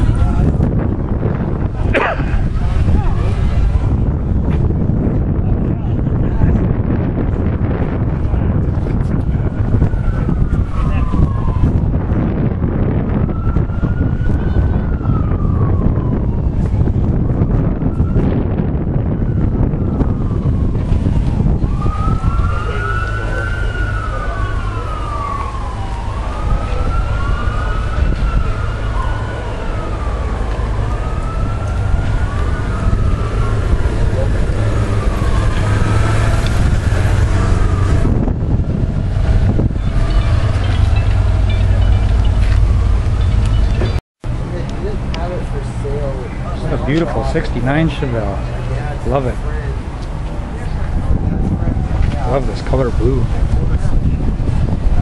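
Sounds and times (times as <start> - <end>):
sirens wailing: 0.0 - 55.0
steady low rumble: 0.0 - 55.0.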